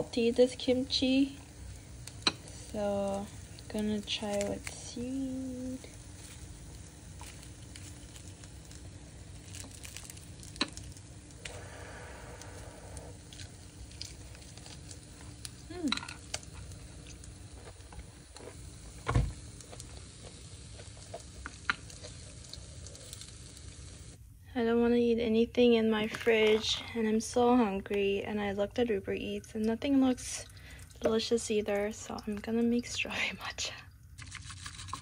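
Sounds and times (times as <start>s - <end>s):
steady low hiss: 0.0s - 34.2s.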